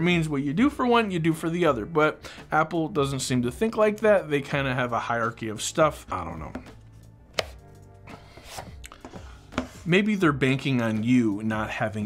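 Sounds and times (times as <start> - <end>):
cardboard box knocks and scrapes: 8.4 - 9.9.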